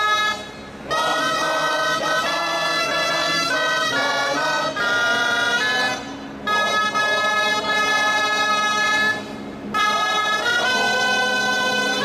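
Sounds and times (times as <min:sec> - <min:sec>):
wind instruments slow melody: 0:00.0 - 0:12.0.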